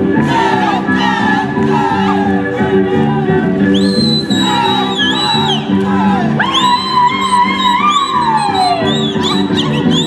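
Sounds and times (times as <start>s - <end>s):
live folk dance music: 0.0s - 10.0s.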